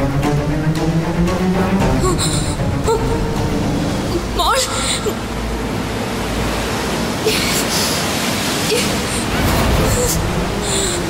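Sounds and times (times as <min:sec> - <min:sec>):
sea surf breaking: 0:03.2 - 0:11.0.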